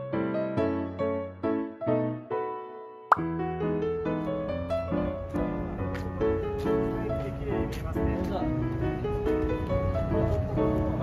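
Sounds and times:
keyboard background music: 0:00.0 - 0:11.0.

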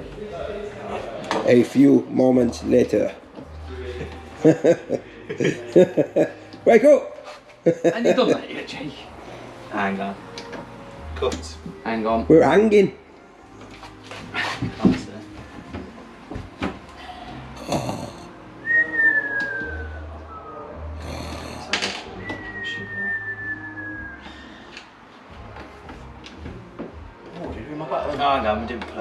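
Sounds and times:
cartoon snoring: 0:17.6 - 0:18.3, 0:21.0 - 0:21.8.

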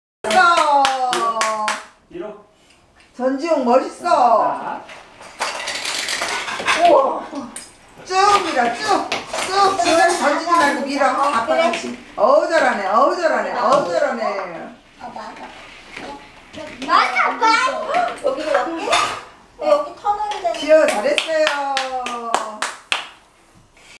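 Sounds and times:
hands clapping: 0:00.3 - 0:01.9, 0:20.8 - 0:23.3.

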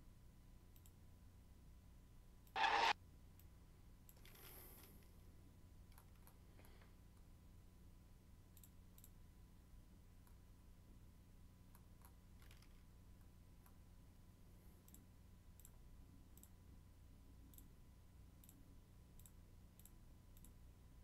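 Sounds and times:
low steady hum: 0:00.0 - 0:21.0
computer mouse clicks: 0:00.7 - 0:01.0, 0:08.5 - 0:09.2, 0:14.8 - 0:15.8, 0:16.4 - 0:16.6, 0:17.4 - 0:17.8, 0:18.4 - 0:18.6, 0:19.2 - 0:20.6.

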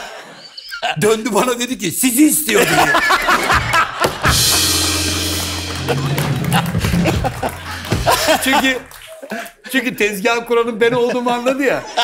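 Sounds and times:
people laughing: 0:02.5 - 0:09.8, 0:10.8 - 0:12.0
drum and cymbal crash: 0:04.2 - 0:08.8
held bass notes: 0:04.3 - 0:08.7
house band comic sting: 0:04.3 - 0:08.8.

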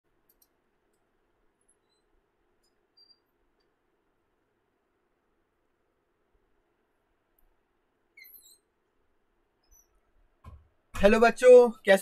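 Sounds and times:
faint high-pitched chirps: 0:01.6 - 0:03.8, 0:08.0 - 0:08.8, 0:09.5 - 0:10.1.

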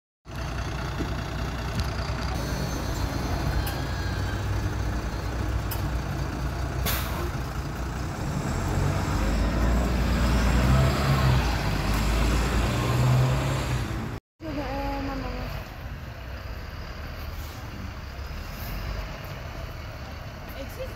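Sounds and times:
bus diesel engine running: 0:00.2 - 0:20.9
air brake hiss: 0:06.8 - 0:07.3.

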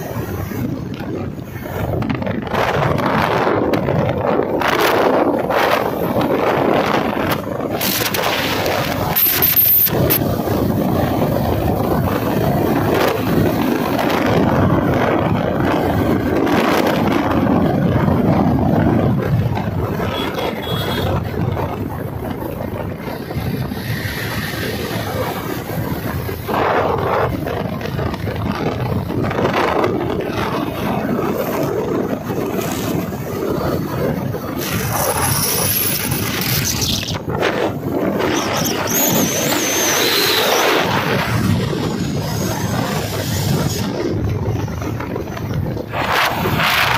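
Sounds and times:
motorcycle engine: 0:00.0 - 0:46.9
wind buffeting microphone: 0:00.0 - 0:46.9.

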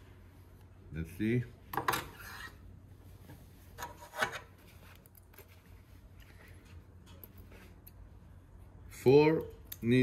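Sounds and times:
faint handling noise: 0:03.0 - 0:08.3.

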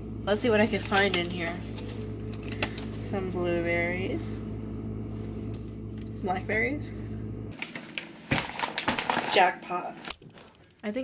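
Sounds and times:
refrigerator hum: 0:00.0 - 0:11.0
chip bag crackling: 0:07.6 - 0:09.6.

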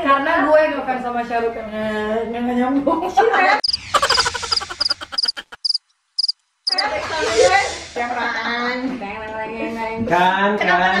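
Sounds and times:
cricket chirps: 0:03.6 - 0:06.8
laughter: 0:03.9 - 0:05.7.

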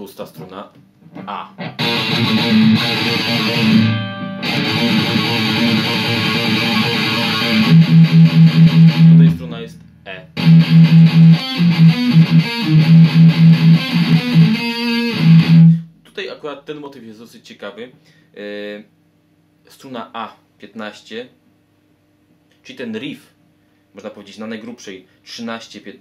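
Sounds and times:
distorted electric guitar riff: 0:01.1 - 0:15.9.

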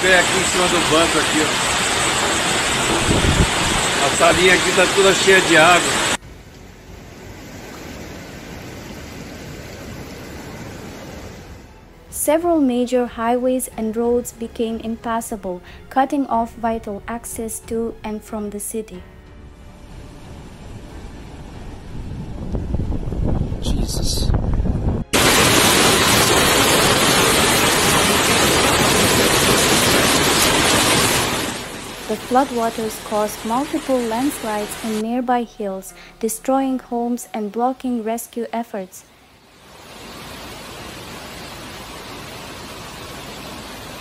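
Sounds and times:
floodwater rushing: 0:00.0 - 0:06.2, 0:25.2 - 0:35.0, 0:39.5 - 0:44.0.

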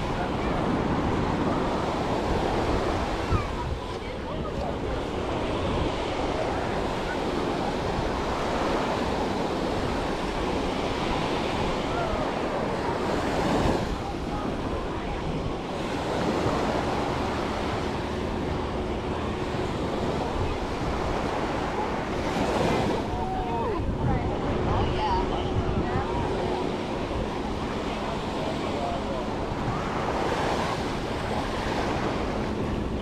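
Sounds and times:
small waves washing on sand: 0:00.0 - 0:33.0.

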